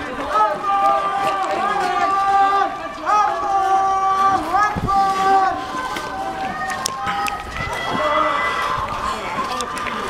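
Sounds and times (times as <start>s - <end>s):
men calling out drawn-out cries: 0.1s - 8.8s.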